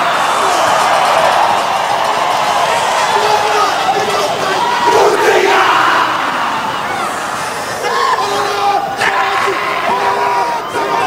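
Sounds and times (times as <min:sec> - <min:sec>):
stadium crowd noise: 0:00.0 - 0:11.0
men shouting a chant in unison: 0:03.0 - 0:11.0.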